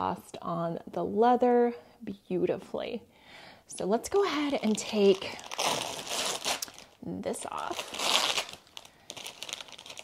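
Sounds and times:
plastic wrap crinkling: 4.2 - 10.0.

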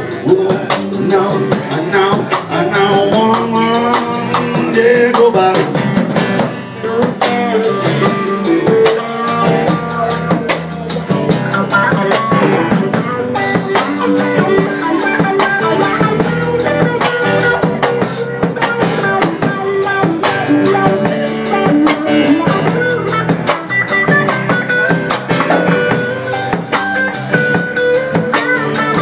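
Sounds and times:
drum kit beat: 0.0 - 29.0
electric guitar: 0.0 - 29.0
percussion: 0.0 - 29.0.

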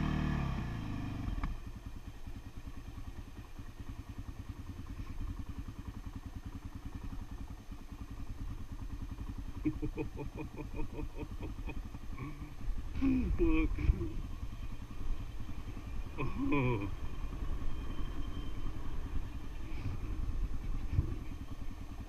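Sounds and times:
off-road vehicle engine: 0.0 - 22.0.

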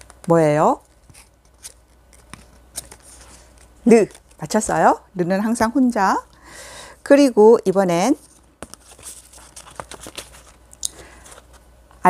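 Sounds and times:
paper card rustling: 0.0 - 4.7, 8.0 - 11.7.

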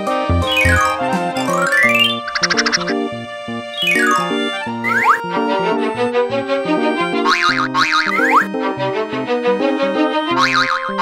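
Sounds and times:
cheerful cartoon music: 0.0 - 11.0.

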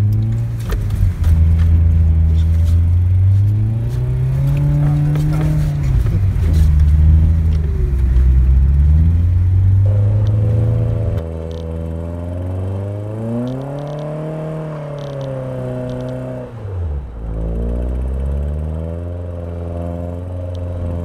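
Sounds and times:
car engine revving hard: 1.2 - 16.8.

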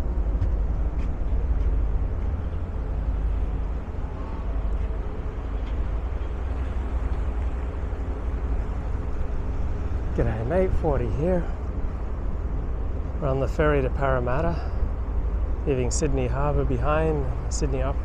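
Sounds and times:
ferry engine drone: 0.0 - 18.0
water rumble: 0.0 - 18.0
wind buffeting microphone: 0.0 - 18.0.

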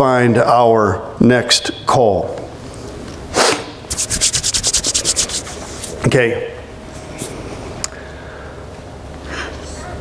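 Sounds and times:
hands rubbing together: 3.9 - 6.0.

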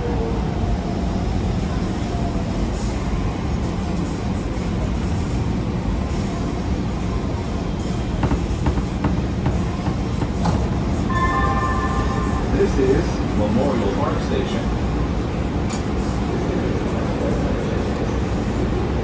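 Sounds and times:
train wheels rumbling on rail: 7.8 - 13.4.

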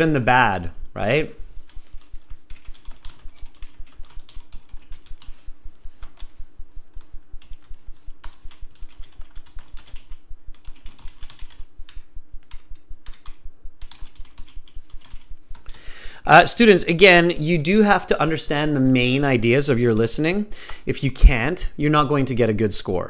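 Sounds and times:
faint steady hum: 0.0 - 23.0
typing on computer keyboard: 1.7 - 5.4, 6.0 - 15.8.

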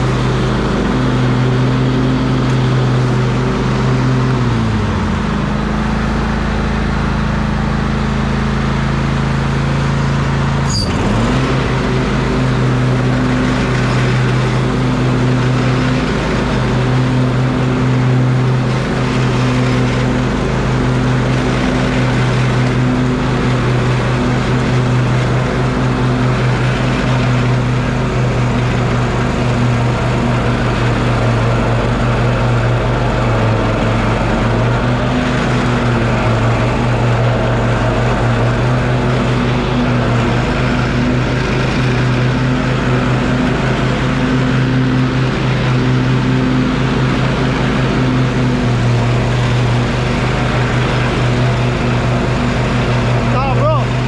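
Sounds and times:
mower blades whirring: 0.0 - 54.0
riding mower engine running: 0.0 - 54.0.

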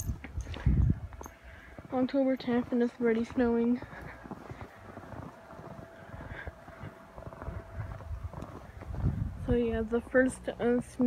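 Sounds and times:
footsteps crunching through snow: 0.0 - 11.0
wind buffeting microphone: 0.0 - 11.0.

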